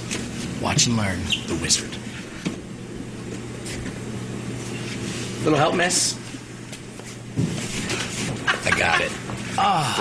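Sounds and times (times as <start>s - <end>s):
low hum of store background: 0.0s - 10.0s.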